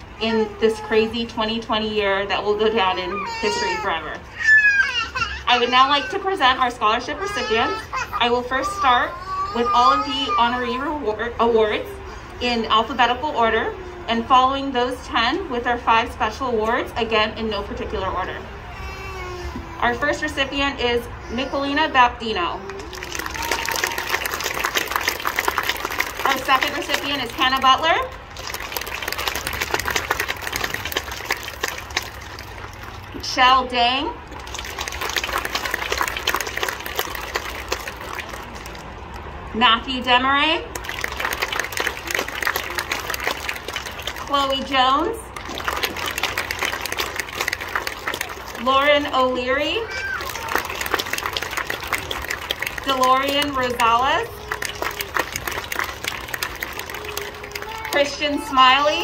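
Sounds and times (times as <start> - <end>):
audience applause: 22.7 - 27.4, 28.2 - 33.1, 34.4 - 38.9, 40.7 - 44.3, 45.3 - 48.6, 49.9 - 58.2.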